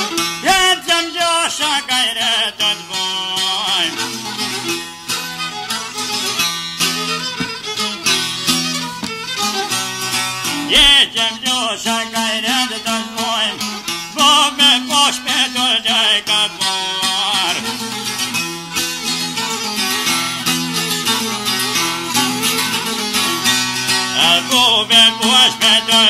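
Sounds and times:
plucked long-necked lute: 0.0 - 26.0.

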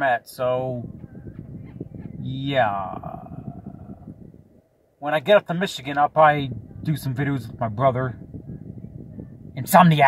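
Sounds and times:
faint low rumble: 0.0 - 10.0
voice humming: 0.9 - 4.3.

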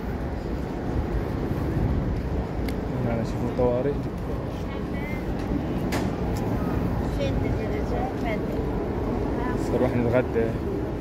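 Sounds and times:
steady low rumble: 0.0 - 11.0
people talking: 4.6 - 5.3, 6.5 - 8.7.

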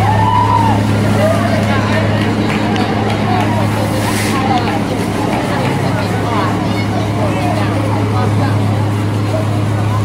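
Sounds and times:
people chattering: 0.0 - 10.0
vehicle engine idling: 0.0 - 10.0.

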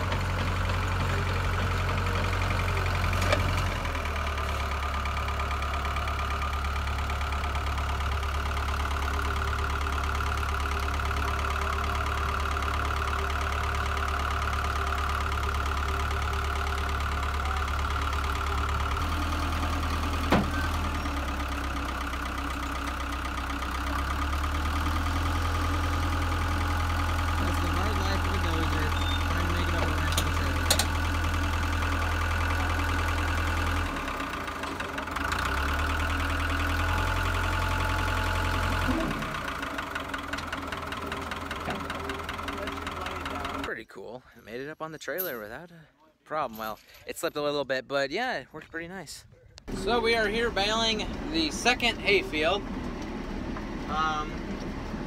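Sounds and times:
bulldozer diesel engine running: 0.0 - 45.6, 49.5 - 55.0.

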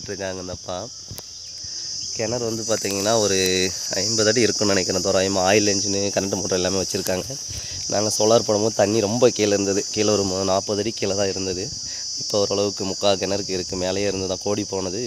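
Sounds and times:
high-pitched insect chorus: 0.0 - 15.0
person talking: 2.2 - 15.0.

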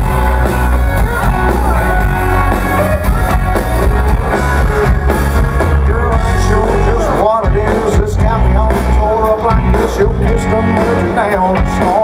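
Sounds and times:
drum kit beat: 0.0 - 12.0
electric guitars: 0.0 - 12.0.

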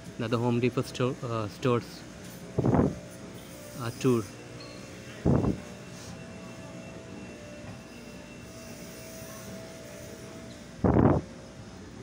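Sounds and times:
store interior hum: 0.0 - 12.0.

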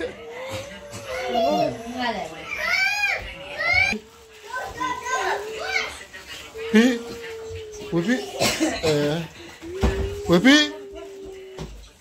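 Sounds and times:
children chattering and exclaiming: 0.0 - 12.0.

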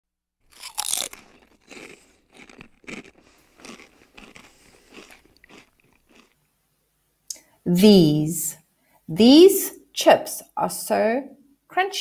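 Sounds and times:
person chewing crunchy chips: 0.4 - 6.4.

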